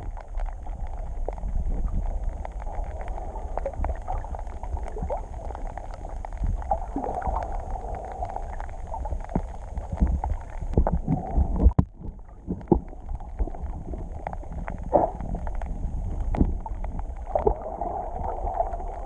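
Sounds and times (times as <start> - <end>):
clicks and crackles: 0.0 - 19.0
underwater rumble of moving water: 0.0 - 19.0.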